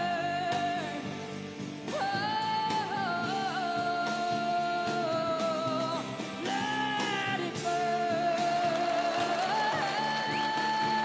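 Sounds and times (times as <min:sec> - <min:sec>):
band playing: 0:00.0 - 0:11.0
woman singing with vibrato: 0:01.9 - 0:11.0.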